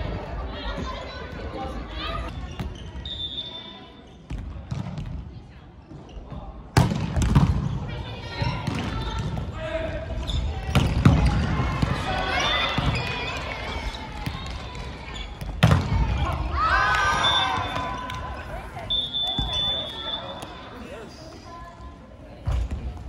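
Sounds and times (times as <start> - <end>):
players calling out: 9.0 - 21.3.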